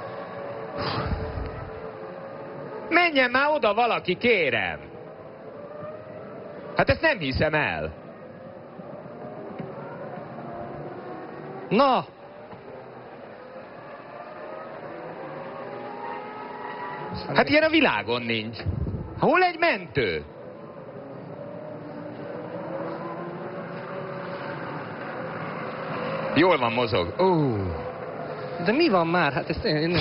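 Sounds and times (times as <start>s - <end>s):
distant racing car engines: 0.0s - 30.0s
trackside background noise: 0.0s - 30.0s.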